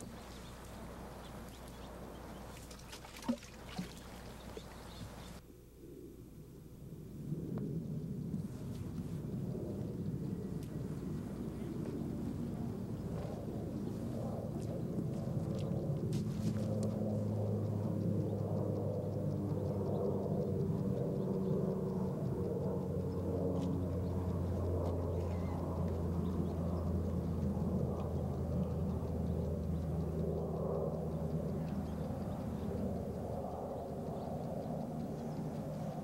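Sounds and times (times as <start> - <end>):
motor humming steadily: 0.0 - 5.4, 8.2 - 36.0.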